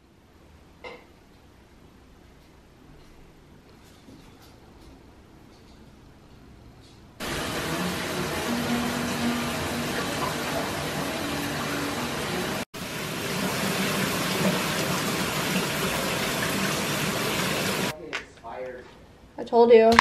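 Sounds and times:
shower water spray hissing: 7.2 - 17.9.

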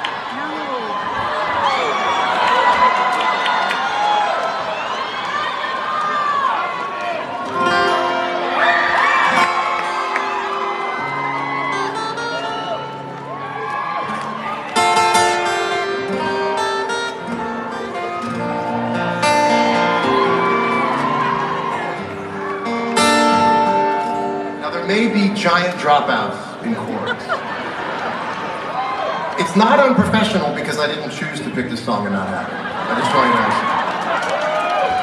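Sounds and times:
crowd cheering and whooping: 0.0 - 24.5, 26.8 - 30.0, 32.5 - 35.0
crowd shouting: 0.0 - 24.5
acoustic guitar over sound system: 7.4 - 28.2, 29.4 - 33.7.

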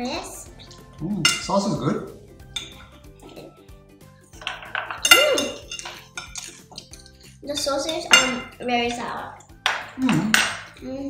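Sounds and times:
quiet background music: 0.0 - 11.0
cutlery clinking on a plate: 1.2 - 1.6, 4.4 - 8.6, 9.6 - 10.8.

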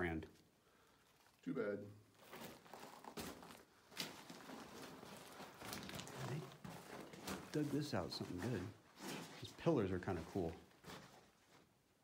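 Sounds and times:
footsteps crunching on gravel: 2.2 - 11.2
faint scuffing: 2.2 - 11.7.

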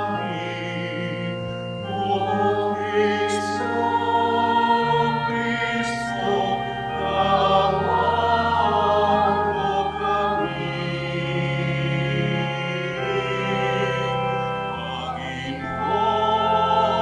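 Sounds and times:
church choir singing: 0.0 - 17.0
instrumental accompaniment: 0.0 - 17.0.

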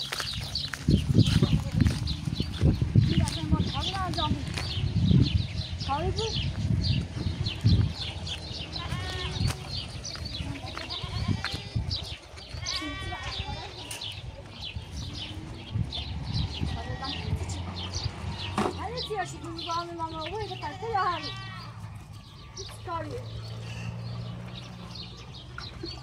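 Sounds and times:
goats bleating: 8.7 - 9.8, 10.4 - 14.0, 16.6 - 17.6, 20.3 - 21.9.

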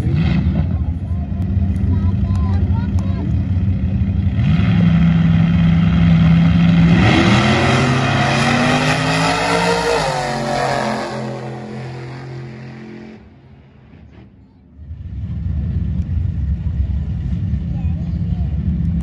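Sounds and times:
drag race car engines roaring: 0.0 - 19.0.

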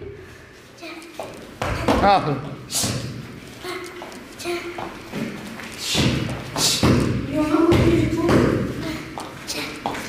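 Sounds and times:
bare feet thudding on foam mats: 4.8 - 10.0.

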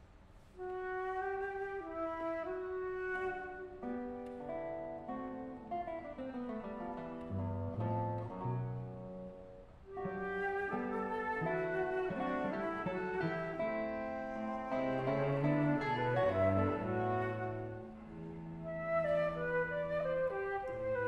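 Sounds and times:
flute guitar and cello trio: 0.6 - 21.0.

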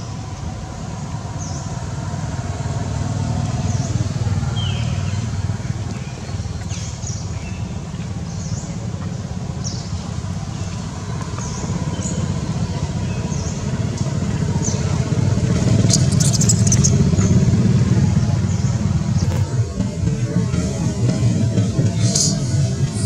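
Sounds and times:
low traffic rumble: 0.0 - 23.0
short high chirps: 15.9 - 16.9.

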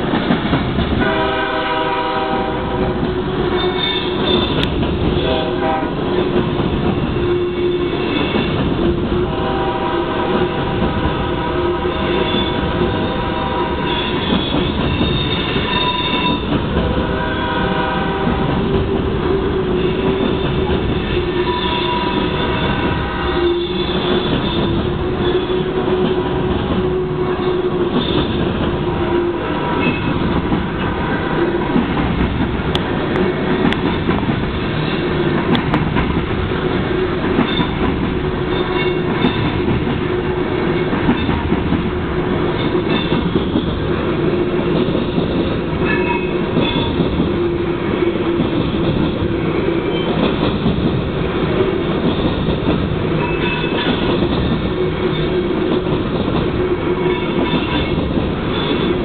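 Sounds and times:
freight train wheels rumbling: 0.0 - 59.0.

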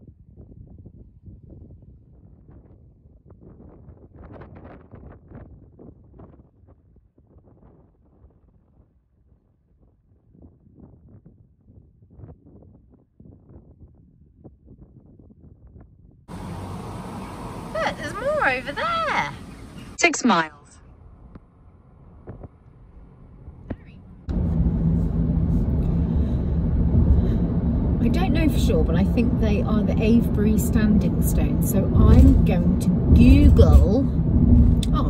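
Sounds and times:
wind and road noise from car: 0.0 - 20.0, 20.9 - 35.0
car interior sound: 16.3 - 19.9.

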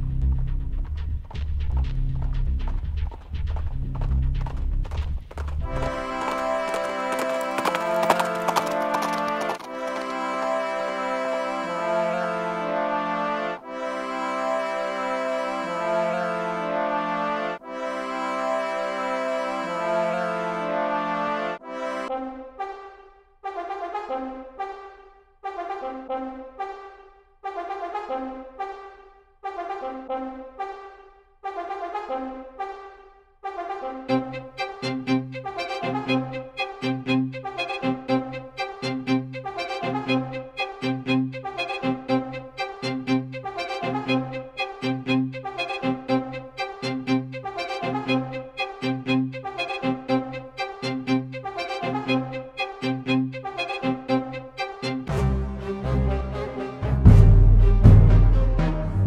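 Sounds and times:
orchestral music led by brass: 5.6 - 59.0.

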